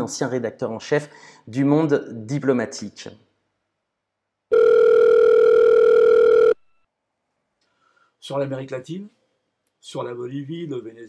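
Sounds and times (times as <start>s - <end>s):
steady electronic telephone tone: 4.5s - 6.8s.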